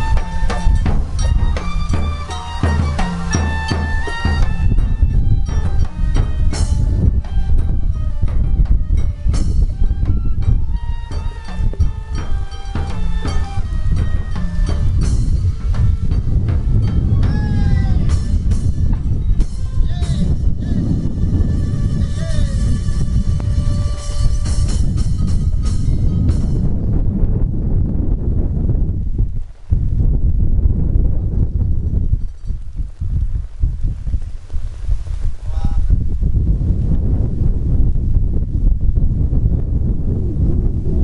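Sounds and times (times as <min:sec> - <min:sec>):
street band melody over a beat: 0:00.0 - 0:27.0
heavy rain: 0:00.0 - 0:41.0
wind buffeting the microphone: 0:00.0 - 0:41.0.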